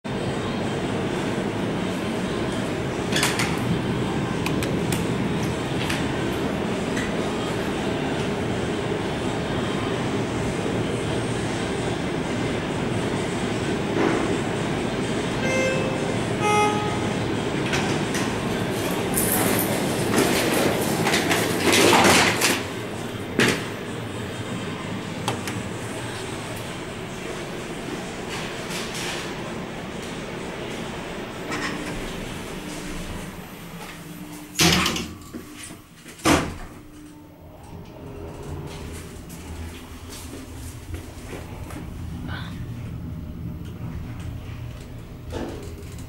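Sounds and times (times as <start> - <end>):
elevator doors sliding open: 0.9 - 46.0
elevator two-tone chime: 15.4 - 17.3
footsteps: 38.9 - 41.9.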